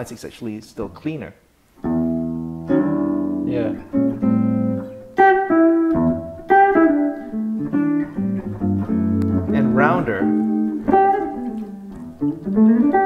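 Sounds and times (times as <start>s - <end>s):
person speaking: 0.0s - 1.4s, 3.4s - 3.8s, 9.3s - 10.6s
clean electric guitar: 1.8s - 13.0s.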